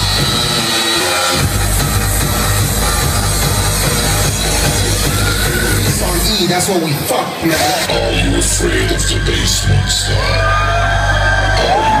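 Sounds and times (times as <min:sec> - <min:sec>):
hardstyle dance music: 0:00.0 - 0:12.0
crowd yelling and whooping: 0:09.2 - 0:12.0.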